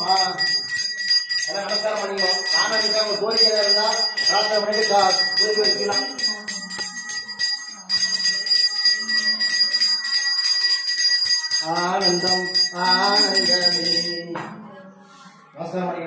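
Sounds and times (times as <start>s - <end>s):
brass hand bell ringing: 0.0s - 14.3s
voices singing: 0.0s - 15.4s.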